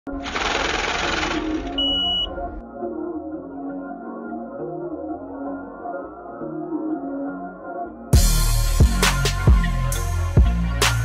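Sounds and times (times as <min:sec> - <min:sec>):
soft ambient music: 0:00.2 - 0:11.0
high beep: 0:01.8 - 0:02.4.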